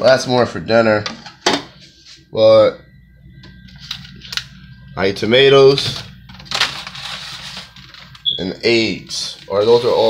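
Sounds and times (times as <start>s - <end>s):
plastic bag rustling and crinkling: 5.8s - 8.3s, 9.1s - 10.0s.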